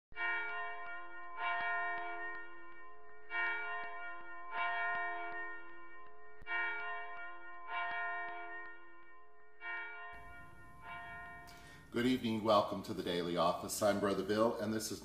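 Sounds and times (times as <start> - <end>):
church bells tolling: 0.1 - 15.0.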